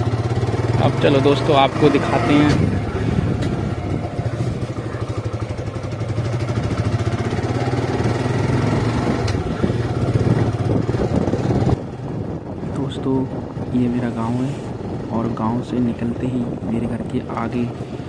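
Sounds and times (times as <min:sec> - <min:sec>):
motorcycle engine running: 0:00.0 - 0:18.0.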